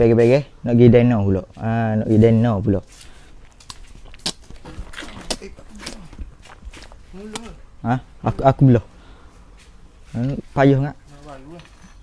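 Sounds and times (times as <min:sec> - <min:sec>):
footsteps: 0:01.5 - 0:07.6, 0:09.2 - 0:12.0.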